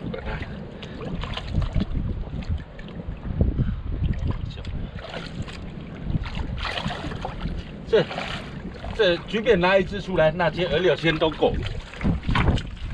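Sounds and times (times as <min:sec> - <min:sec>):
wind rumbling on microphone: 0:00.0 - 0:12.9
hands splashing in muddy water: 0:05.0 - 0:08.6, 0:11.1 - 0:12.9.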